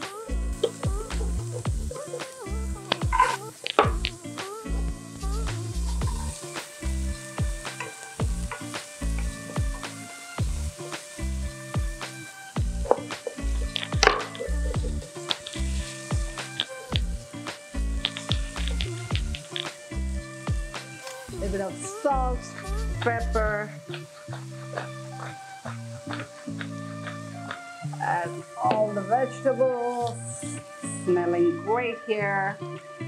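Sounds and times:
vegetables sizzling in pan: 0:00.0 - 0:30.9
background music with beat: 0:00.0 - 0:33.0.

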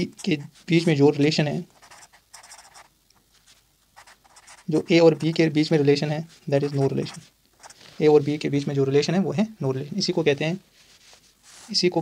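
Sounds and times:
pen scratching on paper: 0:00.0 - 0:01.0, 0:01.7 - 0:02.9, 0:04.0 - 0:05.5, 0:06.3 - 0:07.8.

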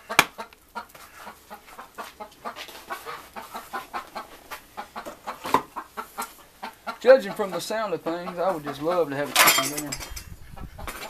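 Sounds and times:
chickens clucking: 0:00.0 - 0:11.0.

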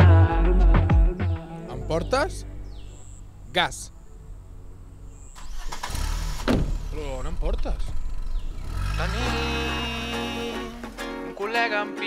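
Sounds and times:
car engine starting: 0:04.2 - 0:11.4.

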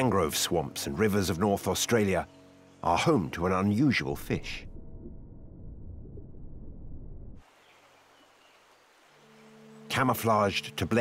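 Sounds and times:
soft low musical drone: 0:00.0 - 0:06.6, 0:09.0 - 0:11.0
muffled underwater rumble: 0:04.0 - 0:07.4.

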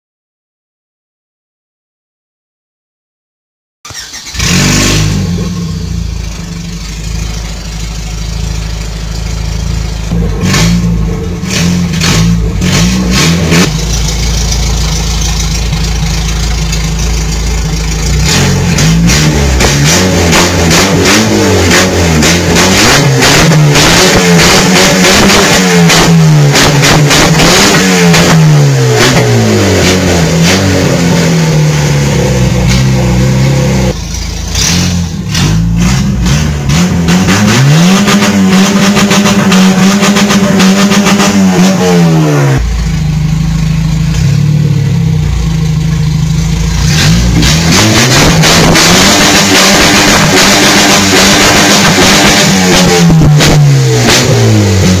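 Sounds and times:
car engine revving: 0:04.0 - 0:55.0.

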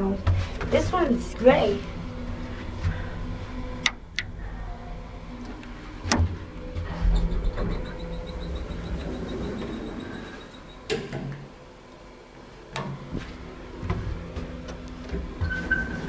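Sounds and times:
elevator humming: 0:00.0 - 0:16.0
elevator clicks: 0:06.0 - 0:11.4
high pulsing beep: 0:07.0 - 0:10.9.

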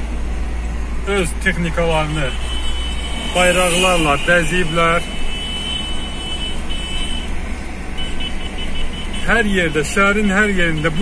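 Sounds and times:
car engine and tyre noise: 0:00.0 - 0:11.0
thin high tone: 0:03.0 - 0:04.9.

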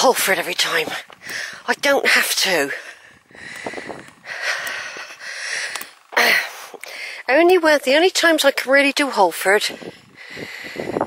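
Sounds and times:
man breathing: 0:01.2 - 0:01.7, 0:02.7 - 0:07.3, 0:09.8 - 0:11.0.

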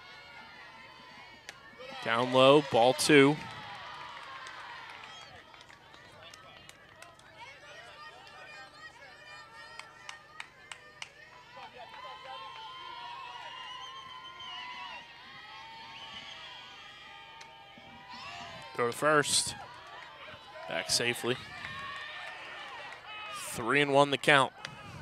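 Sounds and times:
distant players calling and chanting: 0:00.0 - 0:05.5, 0:06.2 - 0:25.0
sharp claps: 0:09.8 - 0:11.2.

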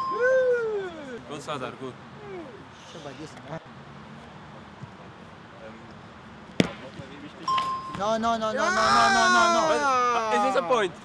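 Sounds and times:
faint outdoor background: 0:00.0 - 0:11.0
boot kicking ball thud: 0:06.6 - 0:06.9.

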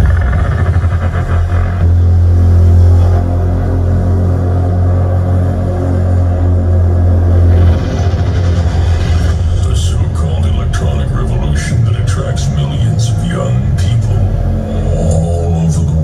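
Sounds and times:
heavy held bass note: 0:00.0 - 0:16.0
layered synths: 0:00.0 - 0:16.0.

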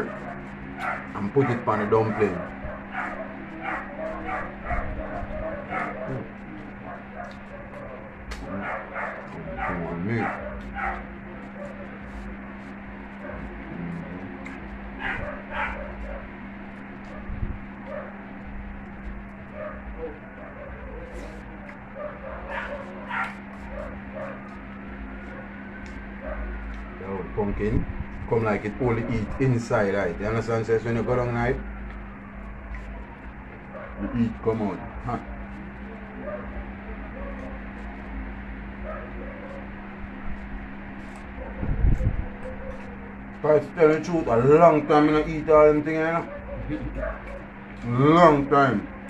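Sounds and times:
steady low hum: 0:00.0 - 0:49.0
whine-like mouth sounds: 0:13.3 - 0:14.8.

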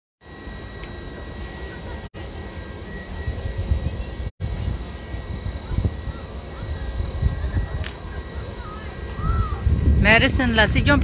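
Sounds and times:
faint steady high whine: 0:00.2 - 0:11.0
wind buffeting microphone: 0:03.2 - 0:11.0.

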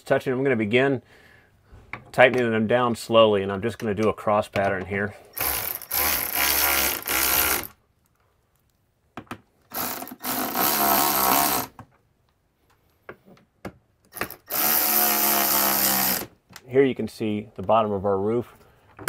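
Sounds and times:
electric ratchet running: 0:05.4 - 0:07.7, 0:09.7 - 0:11.7, 0:14.2 - 0:16.3.

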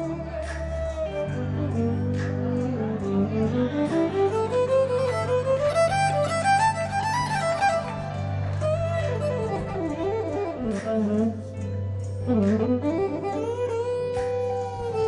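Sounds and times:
solo violin melody: 0:00.0 - 0:15.0.

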